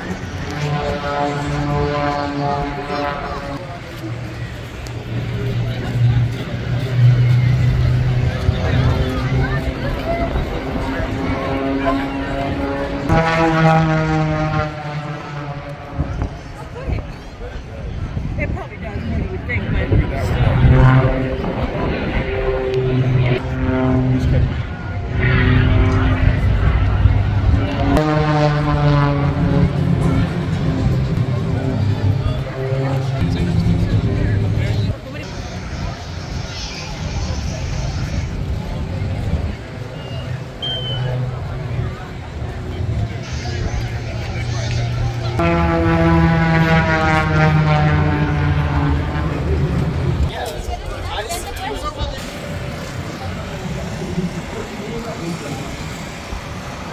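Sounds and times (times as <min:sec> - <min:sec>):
propeller plane engine droning: 0:00.0 - 0:56.9.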